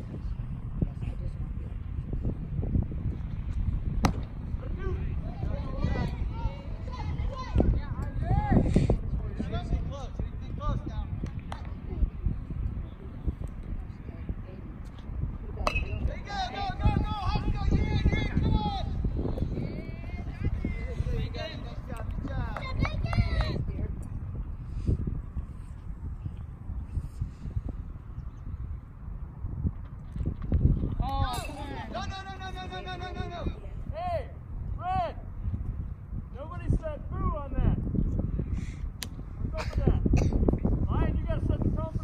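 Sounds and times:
wind buffeting microphone: 0:00.0 - 0:42.0
young players shouting: 0:04.9 - 0:08.6
metal bat hitting ball: 0:15.6 - 0:16.0.

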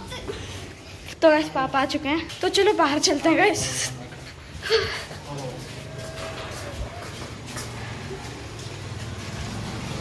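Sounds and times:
distant traffic: 0:00.0 - 0:10.0.

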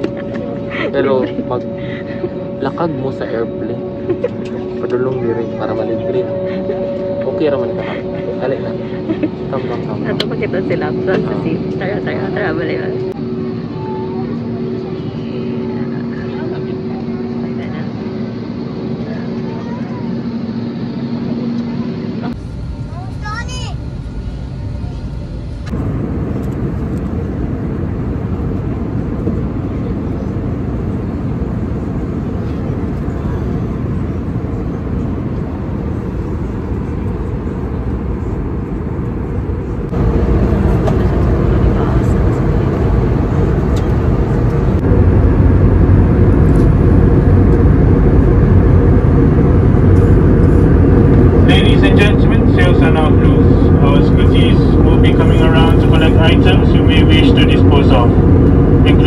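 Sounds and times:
airliner cabin rushing hum: 0:00.0 - 0:59.0
low engine drone: 0:00.0 - 0:59.0.

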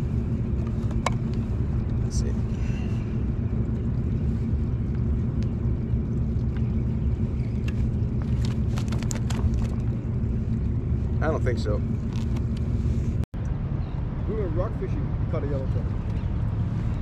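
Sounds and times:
low rumble: 0:00.0 - 0:17.0.

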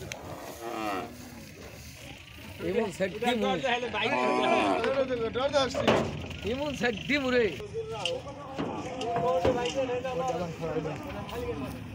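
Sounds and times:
cow mooing: 0:00.3 - 0:01.2, 0:04.0 - 0:05.0.

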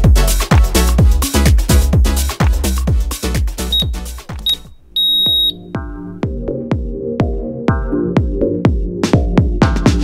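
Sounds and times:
interval timer beeps: 0:03.7 - 0:05.7.

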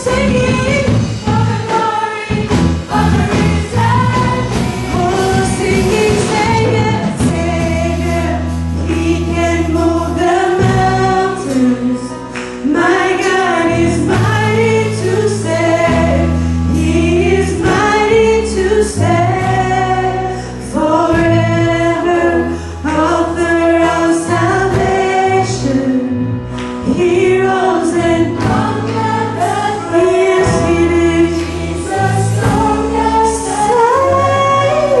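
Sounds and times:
band playing worship music: 0:00.0 - 0:35.0
woman singing into microphone: 0:00.0 - 0:35.0.

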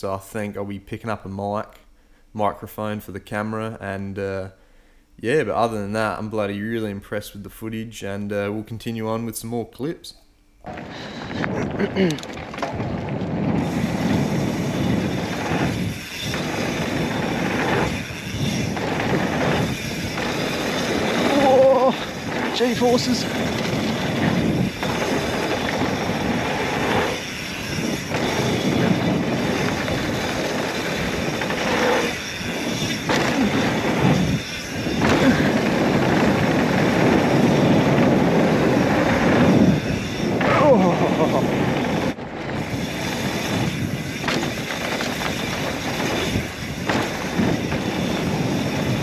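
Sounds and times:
bike tyres on dirt trail: 0:10.6 - 0:49.0.

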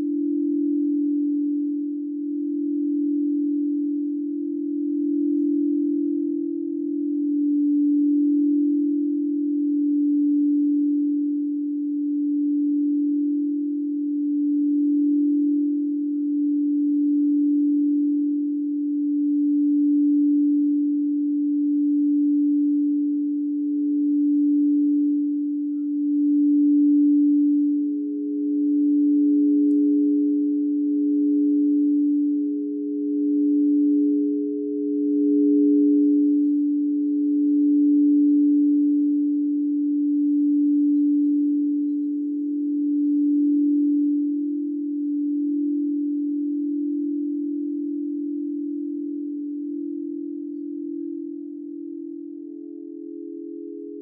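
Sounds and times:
deep singing bowl tone: 0:00.0 - 0:54.0.

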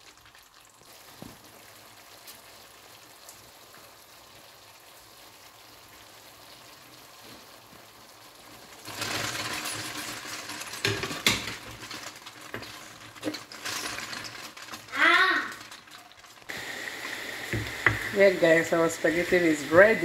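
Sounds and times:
sauce sizzling in a pot: 0:00.0 - 0:20.0
noisy stirring of pasta: 0:07.2 - 0:20.0.

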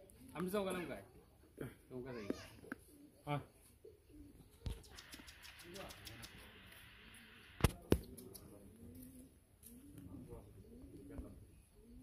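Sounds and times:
low cooing calls: 0:02.2 - 0:07.6, 0:08.4 - 0:12.0.

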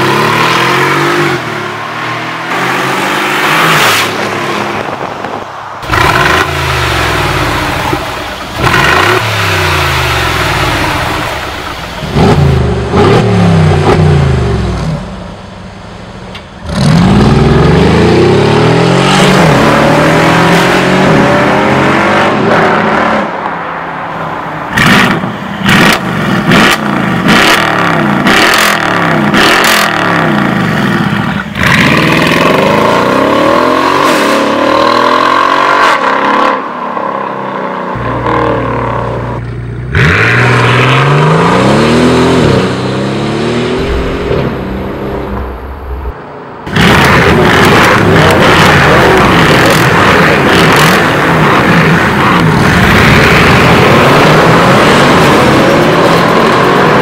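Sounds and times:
car engine revving: 0:05.8 - 0:23.4, 0:24.7 - 0:57.0.

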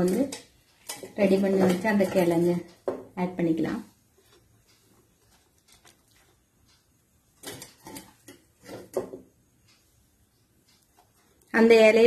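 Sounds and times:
spoon scraping and tapping: 0:00.0 - 0:03.1, 0:07.4 - 0:09.3.

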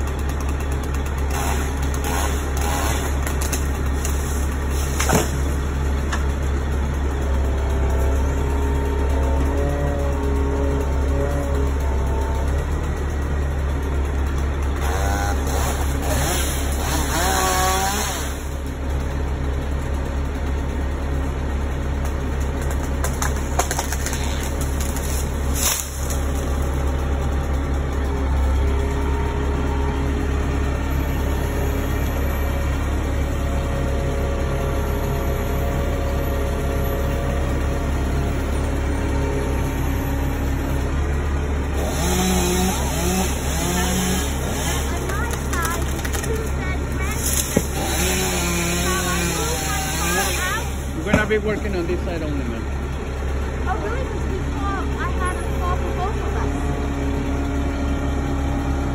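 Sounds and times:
truck engine humming: 0:00.0 - 0:58.9.

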